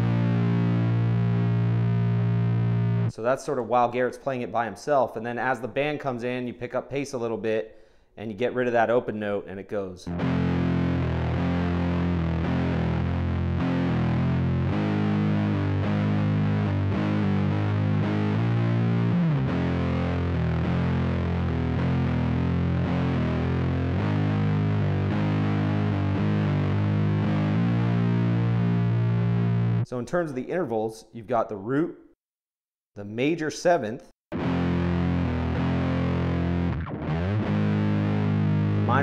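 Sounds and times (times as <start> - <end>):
distorted electric guitar riff: 0.0 - 3.1, 10.1 - 29.9, 34.3 - 39.0.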